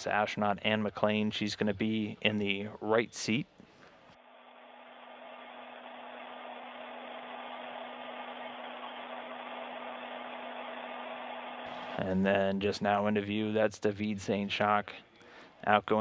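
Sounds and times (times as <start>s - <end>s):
ventilation hiss: 0.0s - 16.0s.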